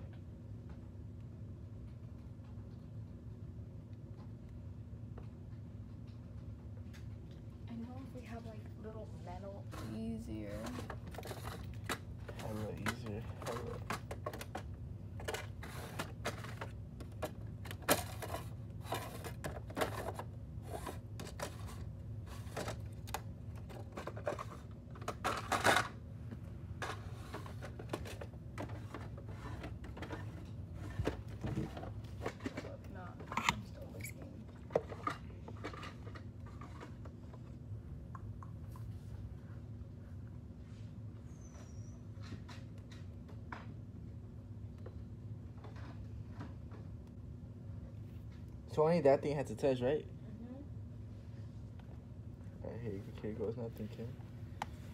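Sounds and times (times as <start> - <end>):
steady low hum: 0.0 - 54.9.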